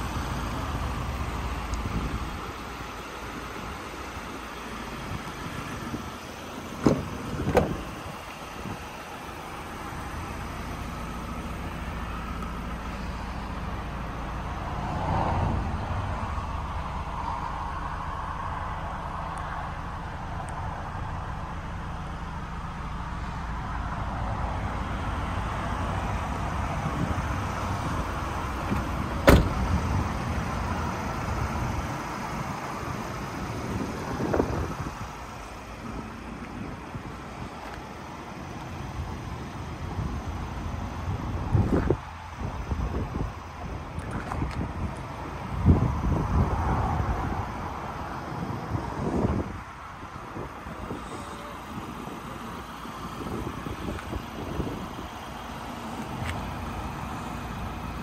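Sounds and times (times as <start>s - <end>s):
steady outdoor rumble: 0.0s - 58.0s.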